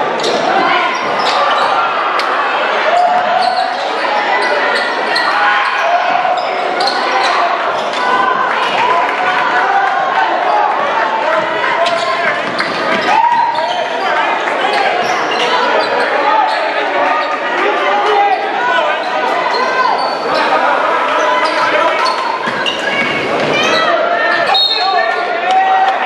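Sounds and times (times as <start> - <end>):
sneakers squeaking: 0.0 - 8.8, 11.2 - 17.5, 18.1 - 25.2
crowd chatter: 0.0 - 26.0.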